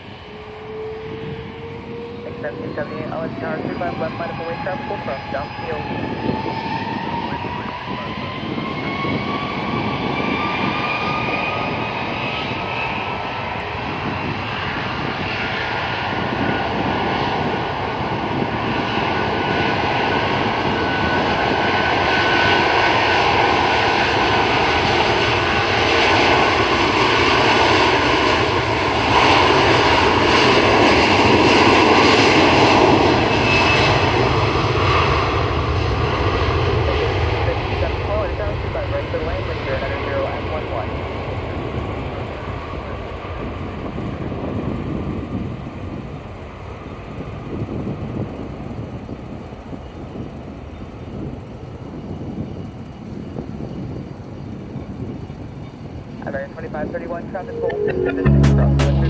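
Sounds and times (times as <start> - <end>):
jet engines roaring and whining: 0.0 - 59.0.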